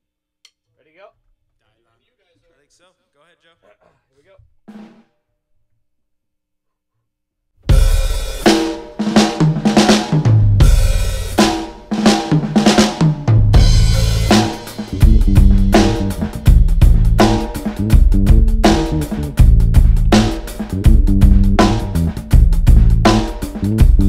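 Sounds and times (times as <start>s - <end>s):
drum kit: 7.6s - 24.0s
bass guitar low notes: 10.3s - 11.3s, 13.2s - 24.0s.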